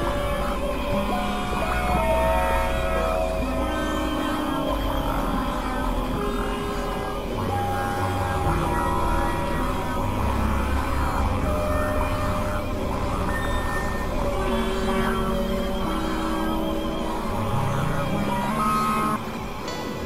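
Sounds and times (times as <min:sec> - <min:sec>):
electronic drone music: 0:00.0 - 0:20.0.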